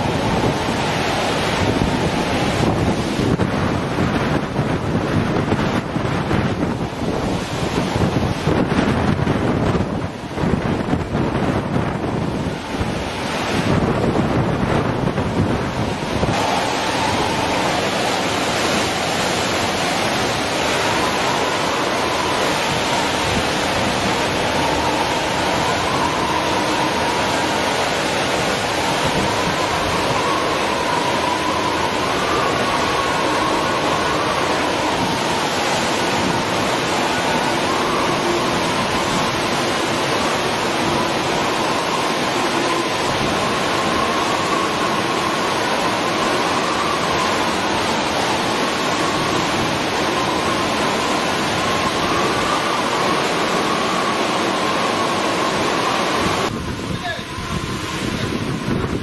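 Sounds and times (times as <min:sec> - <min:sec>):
wavering wind whistle: 0:00.0 - 0:59.0
wind buffeting microphone: 0:00.0 - 0:59.0.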